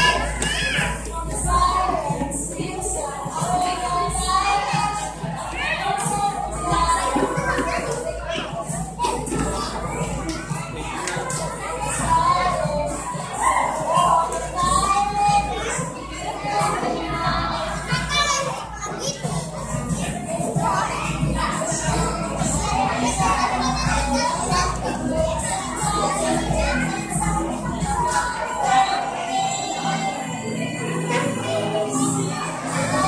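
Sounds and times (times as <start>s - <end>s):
music playing: 0.0s - 33.0s
young children chattering: 0.0s - 33.0s.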